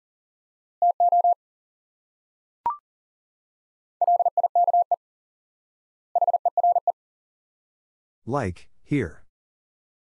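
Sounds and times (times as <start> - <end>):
morse code beeping: 0.8 - 1.4, 4.0 - 5.0, 6.2 - 6.9.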